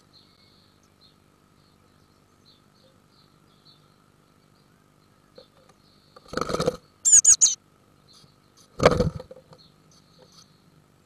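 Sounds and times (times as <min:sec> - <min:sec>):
high bird chirps: 0:07.1 - 0:07.6.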